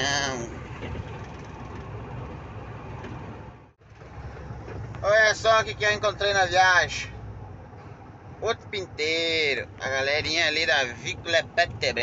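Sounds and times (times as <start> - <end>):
truck engine and road rumble: 0.0 - 12.0.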